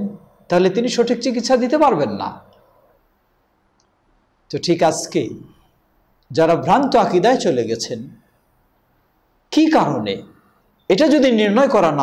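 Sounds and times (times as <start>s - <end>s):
man speaking: 0.0s - 2.5s, 4.5s - 5.6s, 6.3s - 8.2s, 9.5s - 12.0s
faint click: 3.8s - 4.0s.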